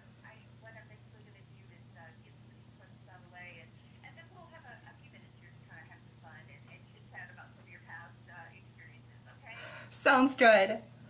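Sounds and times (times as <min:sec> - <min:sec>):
faint telephone voice: 0:00.0 - 0:10.1
low steady hum: 0:00.0 - 0:11.0.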